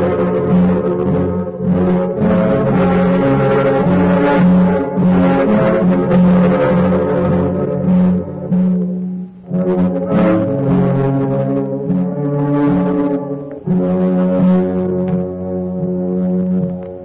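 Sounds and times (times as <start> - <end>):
orchestral brass chords: 0.0 - 17.0.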